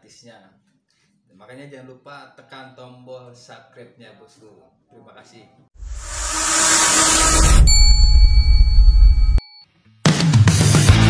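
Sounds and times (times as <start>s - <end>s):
deep rumble: 5.8s - 9.4s
whoosh: 5.8s - 9.4s
bell-like ding: 6.7s - 9.6s.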